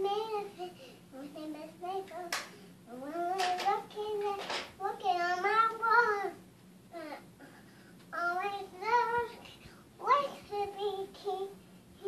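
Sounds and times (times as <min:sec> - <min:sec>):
sharp hand clap: 0:02.3 - 0:02.5.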